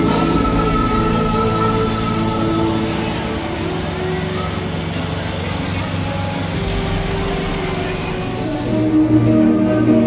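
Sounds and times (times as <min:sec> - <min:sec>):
crowd voices: 0:00.0 - 0:10.0
pickup truck engine running: 0:00.0 - 0:10.0.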